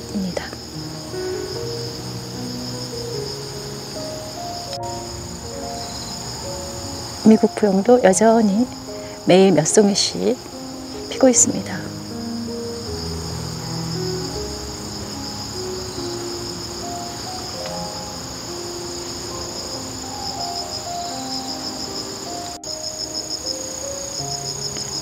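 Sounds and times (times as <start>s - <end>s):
crickets chirring: 0.0s - 25.0s
soft background music: 0.0s - 25.0s.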